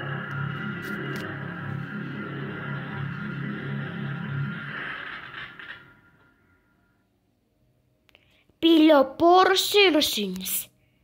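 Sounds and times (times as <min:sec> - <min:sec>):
pulsing low electronic notes: 0:00.0 - 0:06.6
steady high electronic tones: 0:00.0 - 0:07.0.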